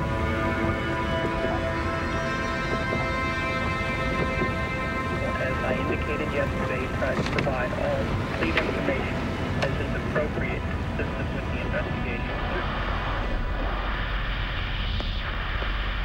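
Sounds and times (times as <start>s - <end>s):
car road and engine noise: 0.0s - 16.0s
indistinct voices: 5.1s - 14.0s.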